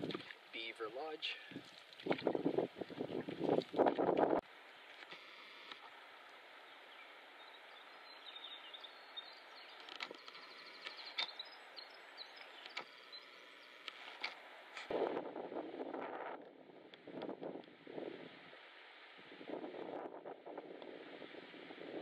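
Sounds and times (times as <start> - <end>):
choppy water against canoe: 0.0 - 6.9
wind buffeting microphone: 1.5 - 4.4, 14.9 - 18.6, 19.2 - 22.0
quiet steady hiss: 4.4 - 21.8.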